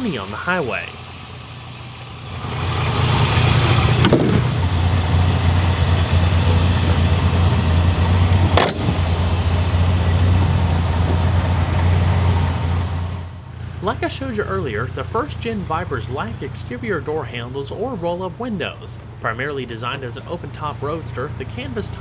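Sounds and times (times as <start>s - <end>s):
car engine idling: 0.0s - 22.0s
sharp knocks: 3.9s - 4.6s, 8.4s - 9.2s.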